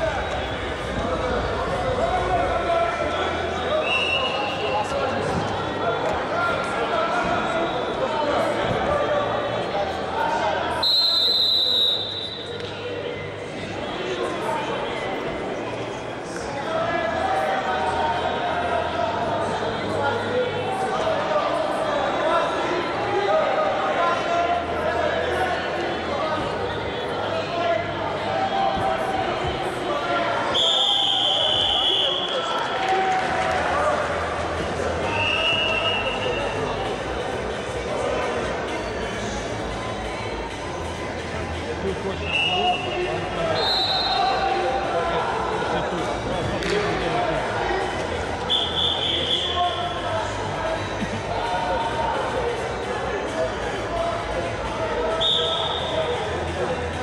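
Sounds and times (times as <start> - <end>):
chatter in sports hall: 0.0 - 57.0
voices in arena: 0.0 - 57.0
referee whistle blast: 10.8 - 12.5, 43.6 - 44.3, 55.2 - 55.9.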